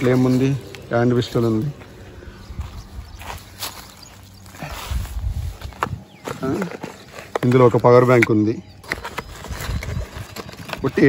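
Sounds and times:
low rumble: 0:00.0 - 0:06.2.

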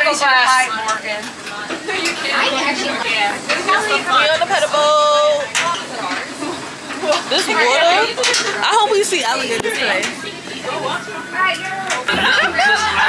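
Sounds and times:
women chattering: 0:00.0 - 0:13.0.

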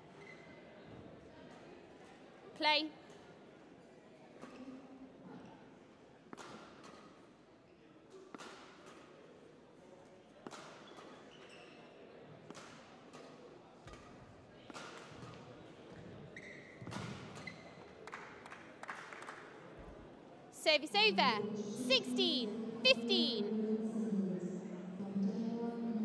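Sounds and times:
court shoes squeaking: 0:16.4 - 0:17.8.

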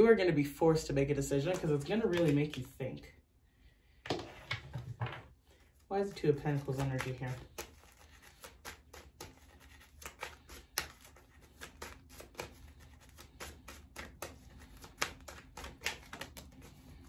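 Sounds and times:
cards shuffling: 0:01.3 - 0:02.8, 0:05.5 - 0:17.0.

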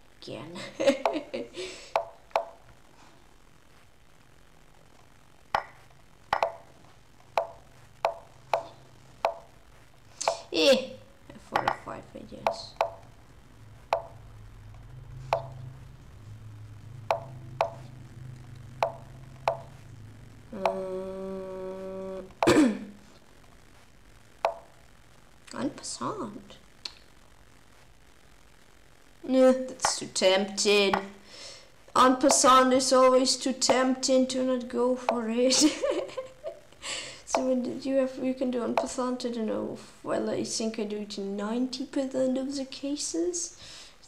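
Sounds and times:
wordless vocal sounds: 0:20.5 - 0:22.7
person humming: 0:20.5 - 0:22.8.

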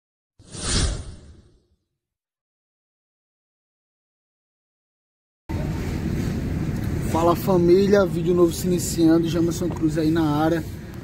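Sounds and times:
whoosh with deep rumble: 0:00.4 - 0:01.6.

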